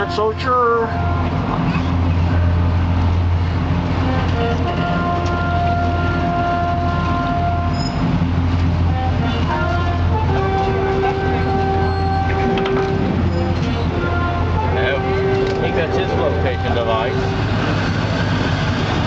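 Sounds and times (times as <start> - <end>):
boat engine droning: 0.0 - 19.0
music with sustained notes: 0.0 - 19.0.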